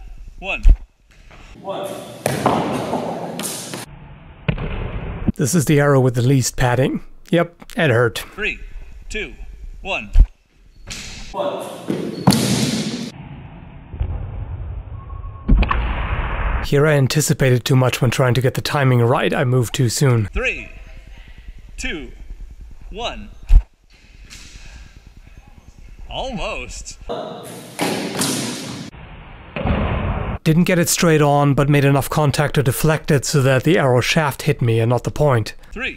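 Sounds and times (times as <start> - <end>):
arrow impact thuds: 11.9 - 13.2, 27.8 - 28.9, 29.5 - 30.2
noisy burst: 12.2 - 17.1.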